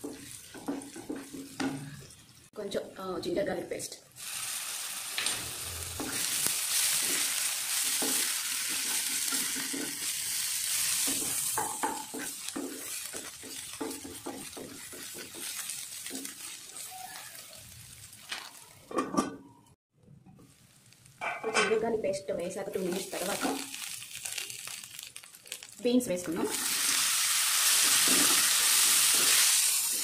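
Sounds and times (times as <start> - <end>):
paste sizzling in hot oil: 4.2 - 18.7, 22.6 - 30.0.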